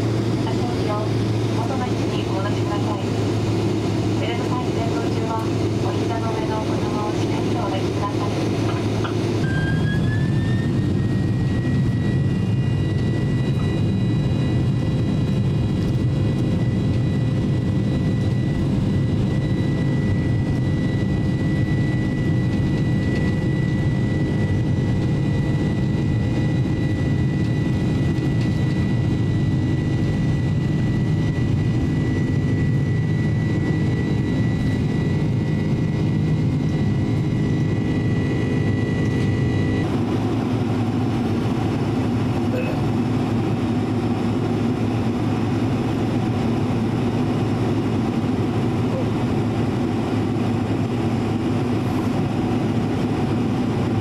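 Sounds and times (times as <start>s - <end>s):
jet engine roar with whine: 0.0s - 54.0s.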